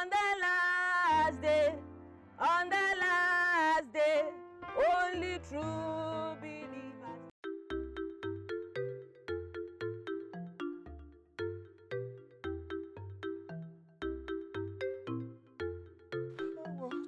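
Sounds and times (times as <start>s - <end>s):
quick melody of short notes: 7.4s - 17.0s.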